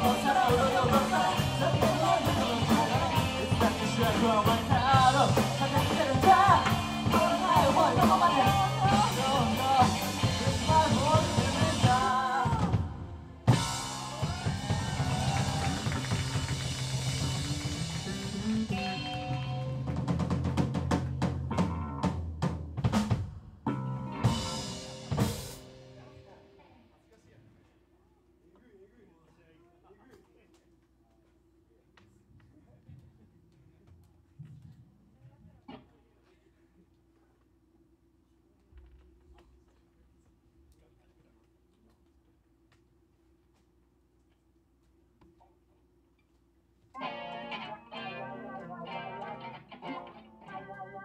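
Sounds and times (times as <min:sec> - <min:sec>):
held bass notes: 0:00.0 - 0:26.0, 0:47.0 - 0:51.0
live rock band playing: 0:00.0 - 0:26.0, 0:47.0 - 0:51.0.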